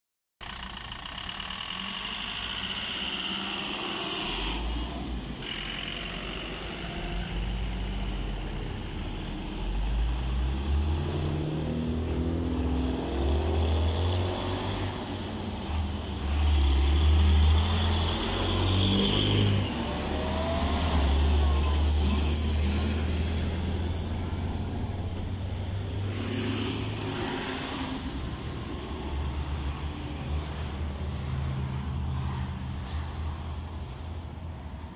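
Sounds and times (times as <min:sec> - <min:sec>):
trucks and cars passing: 0:00.4 - 0:34.9.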